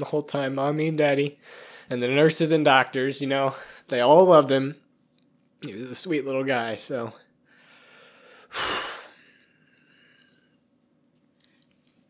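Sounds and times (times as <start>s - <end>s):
sharp intake of breath: 7.5s - 10.5s.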